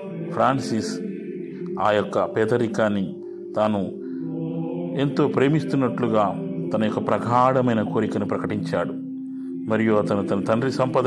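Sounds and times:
sustained drone music: 0:00.0 - 0:11.0.

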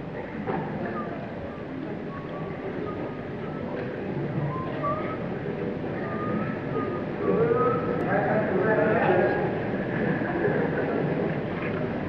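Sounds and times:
crowd murmuring: 0:00.0 - 0:12.0.

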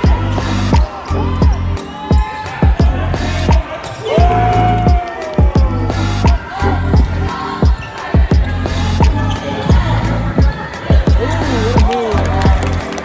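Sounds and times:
sneaker squeaks: 0:07.0 - 0:12.1.

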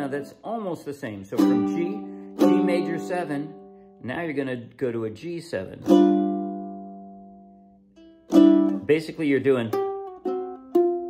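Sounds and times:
ukulele chord strum: 0:01.2 - 0:04.0, 0:05.8 - 0:11.0.

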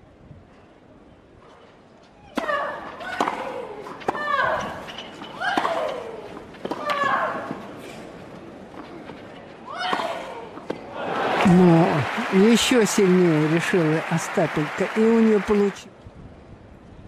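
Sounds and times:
racket hitting tennis ball: 0:02.3 - 0:07.1.

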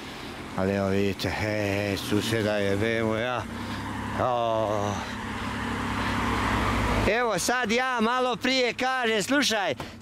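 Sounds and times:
rushing road noise: 0:00.0 - 0:10.0
small car engine running: 0:00.0 - 0:10.0.

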